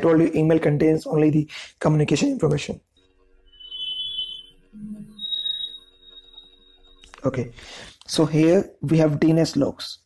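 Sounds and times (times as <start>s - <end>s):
high-pitched electronic tones: 2.9s - 7.5s.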